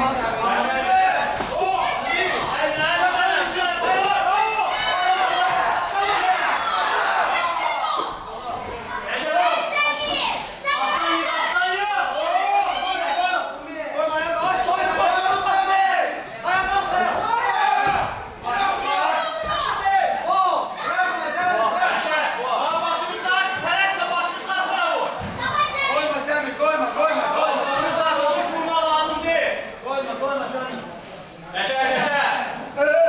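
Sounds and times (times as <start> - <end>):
people shouting: 0.4 - 26.1
people shouting over one another: 0.9 - 8.1.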